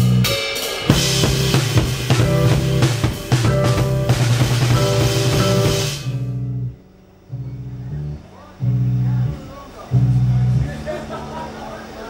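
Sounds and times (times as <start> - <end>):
bass line: 0.0 - 12.0.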